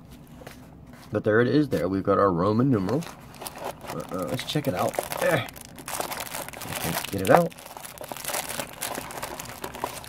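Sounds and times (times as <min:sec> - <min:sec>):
plastic wrapping crinkling: 0:02.8 - 0:10.0.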